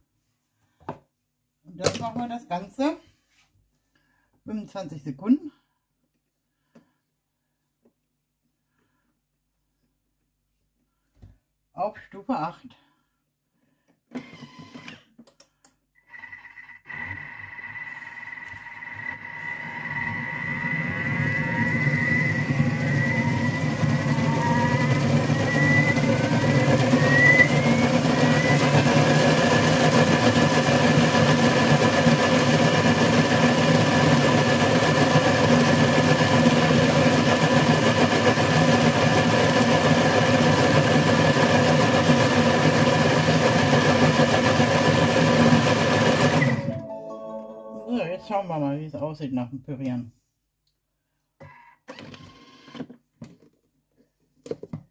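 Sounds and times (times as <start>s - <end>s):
food processor blending: 16.0s - 46.7s.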